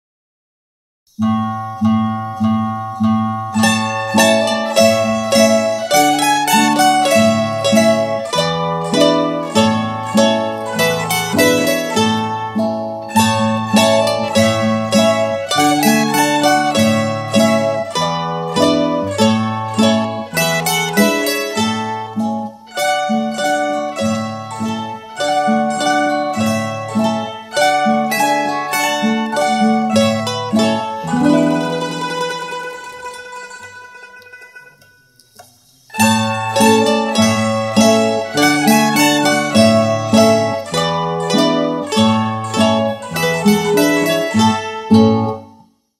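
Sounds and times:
mandolin ensemble playing a tune: 0:01.3 - 0:45.6.

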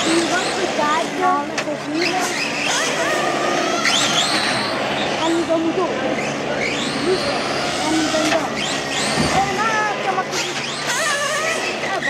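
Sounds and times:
model car motor revving: 0:00.0 - 0:12.0.

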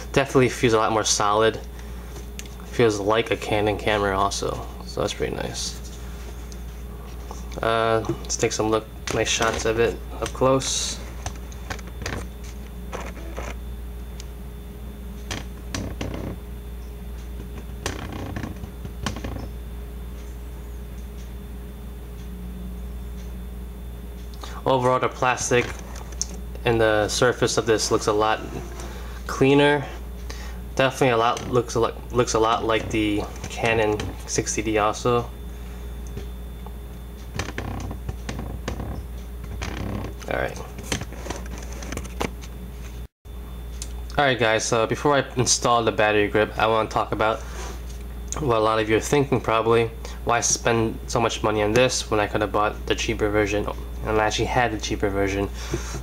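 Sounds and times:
steady low hum: 0:00.0 - 0:56.0
plastic grip clicks and creaks: 0:17.8 - 0:19.4, 0:37.4 - 0:40.3.

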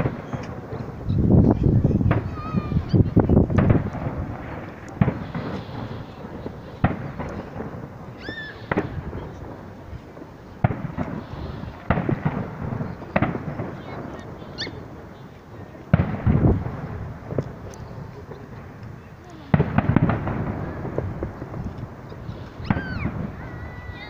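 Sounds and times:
fireworks shells bursting: 0:02.0 - 0:24.0.

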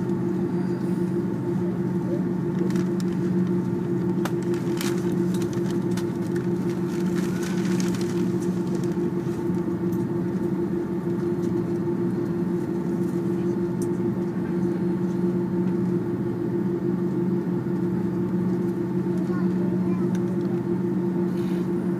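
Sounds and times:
aircraft engines idling drone: 0:00.0 - 0:21.9
low two-tone hum: 0:00.0 - 0:21.9.

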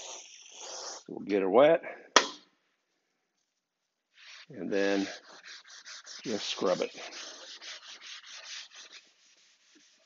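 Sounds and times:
scouring pad scrubbing metal: 0:04.2 - 0:10.0.

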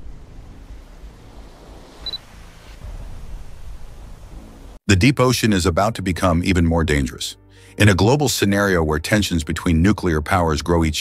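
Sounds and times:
low rumble: 0:00.0 - 0:04.8.

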